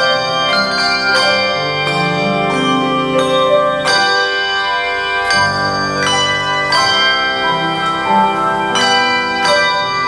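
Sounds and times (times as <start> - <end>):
handbell choir ringing: 0.0 - 10.0.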